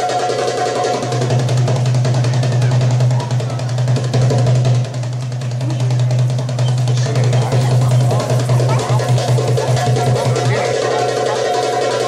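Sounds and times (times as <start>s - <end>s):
goblet drum rapid strokes: 0.0s - 12.0s.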